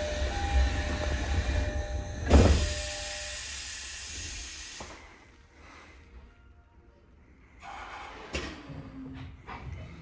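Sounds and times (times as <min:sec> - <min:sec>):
air hiss: 0:02.4 - 0:05.1.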